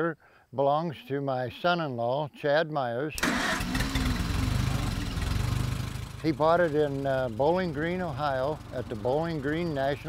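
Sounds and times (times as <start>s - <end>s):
tractor engine idling: 3.2s - 10.0s.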